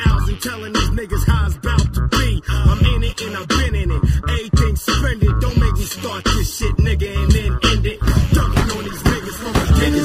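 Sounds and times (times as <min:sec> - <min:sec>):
rapping over a beat: 0:00.0 - 0:10.0.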